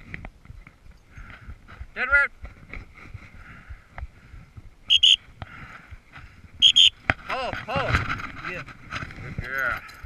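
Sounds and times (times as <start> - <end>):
high-pitched dog whistle blasts: 4.9 - 5.2, 6.6 - 6.9.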